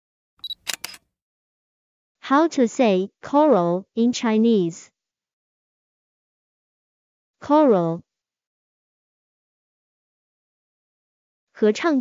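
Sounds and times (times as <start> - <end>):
sharp clicks: 0.4 - 1.0.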